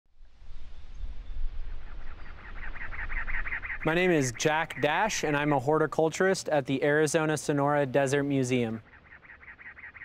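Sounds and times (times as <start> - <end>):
low outdoor rumble: 0.2 - 8.8
bird calling harsh notes: 1.5 - 10.0.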